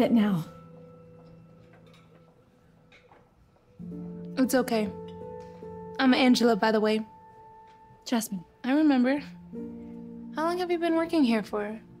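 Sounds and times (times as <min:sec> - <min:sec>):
soft background music chord: 0:00.0 - 0:12.0.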